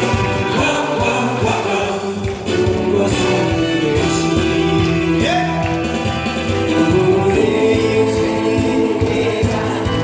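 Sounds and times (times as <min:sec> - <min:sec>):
backing music with steady beat: 0:00.0 - 0:10.0
people singing into microphone: 0:00.4 - 0:04.8, 0:06.6 - 0:10.0.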